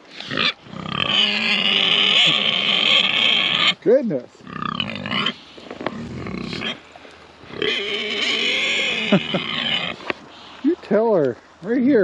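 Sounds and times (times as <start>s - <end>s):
pig squealing: 0.1s - 3.8s, 4.4s - 6.8s, 7.4s - 10.3s.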